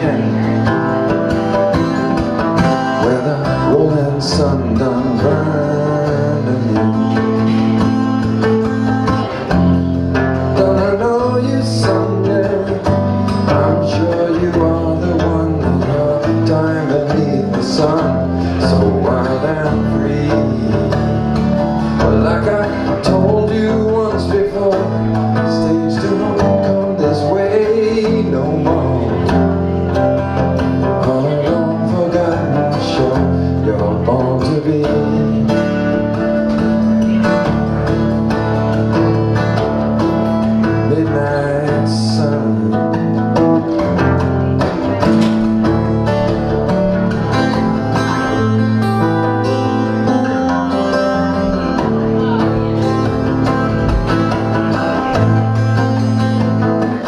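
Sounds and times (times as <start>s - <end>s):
acoustic guitar strumming: 0.0s - 57.0s.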